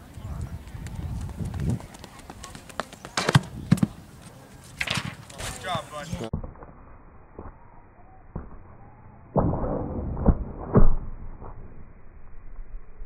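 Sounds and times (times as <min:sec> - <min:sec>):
running footsteps on track: 0:00.0 - 0:06.4.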